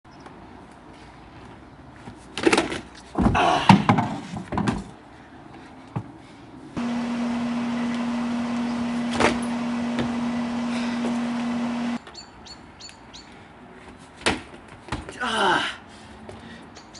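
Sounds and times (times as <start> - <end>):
unicycle thumps on wooden deck: 2.4 - 5.0
steady low hum: 6.8 - 12.0.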